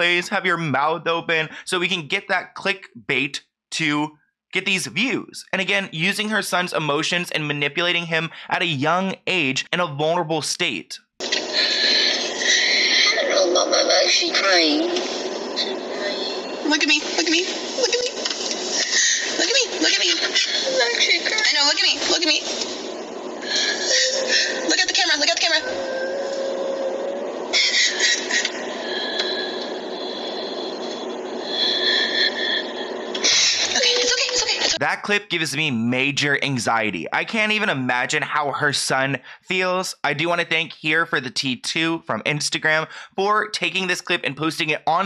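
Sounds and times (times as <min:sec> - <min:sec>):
loud noisy burst: 0:11.2 - 0:13.2
thin high wailing tones: 0:23.4 - 0:34.8.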